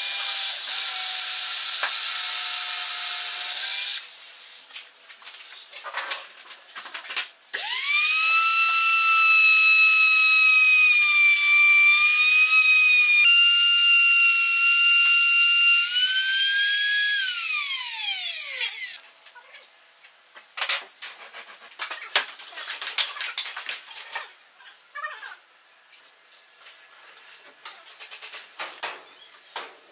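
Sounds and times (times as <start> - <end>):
router whining and cutting wood: 0.0 - 4.1, 7.6 - 19.0.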